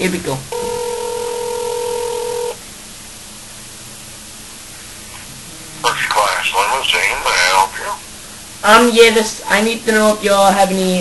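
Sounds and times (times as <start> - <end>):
phone line hiss: 0.5 - 2.6
telephone ringback tone: 0.5 - 2.6.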